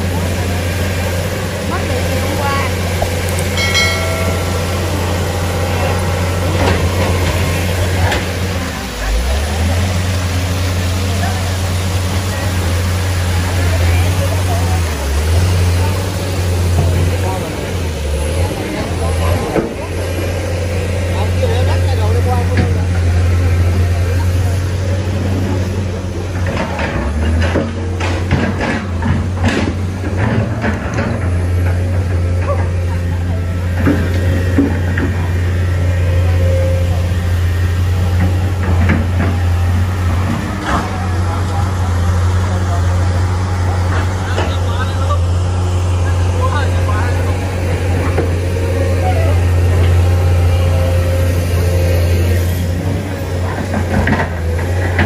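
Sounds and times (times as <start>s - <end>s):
indistinct voices: 0.0s - 29.5s.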